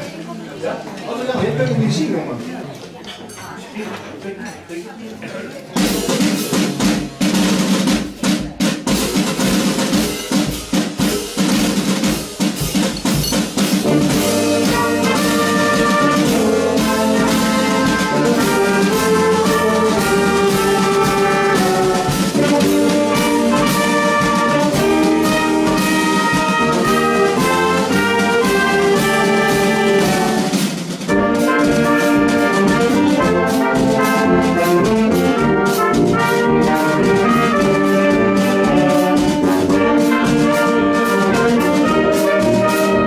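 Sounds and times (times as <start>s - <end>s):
marching drum strokes: 5.6s - 43.0s
marching band playing: 5.8s - 43.0s.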